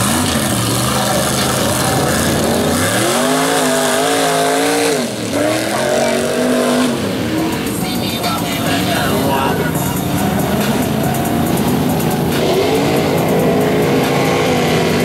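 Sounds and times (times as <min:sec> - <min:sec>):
truck engine revving: 0:00.0 - 0:15.0.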